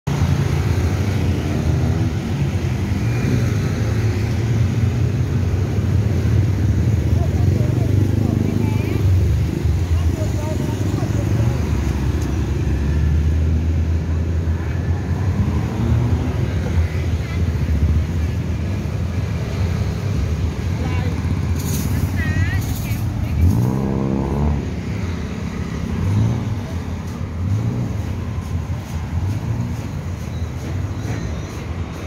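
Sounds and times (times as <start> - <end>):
street traffic rumble: 0.0 - 32.0
motorbike engine revving: 23.3 - 28.1.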